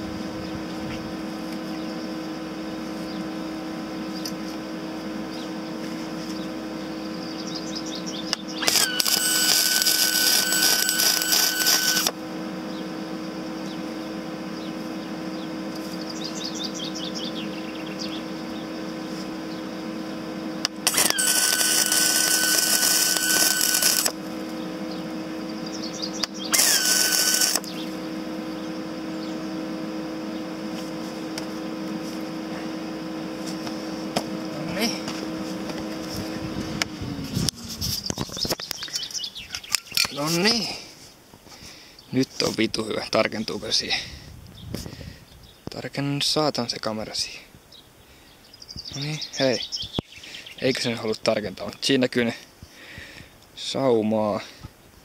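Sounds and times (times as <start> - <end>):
steady welder hum: 0.0 - 44.0
welding arc crackle: 8.6 - 12.2, 20.7 - 24.2, 26.6 - 27.8.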